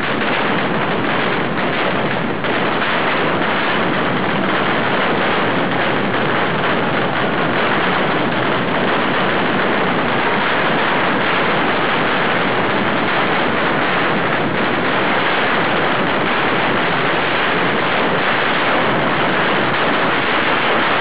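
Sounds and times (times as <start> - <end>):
firecrackers in dense barrage: 0.0 - 21.0.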